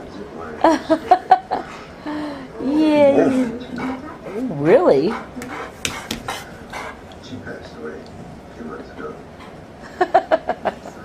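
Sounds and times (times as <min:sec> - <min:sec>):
dog panting: 0:01.5 - 0:02.0, 0:03.2 - 0:07.8, 0:08.8 - 0:09.8.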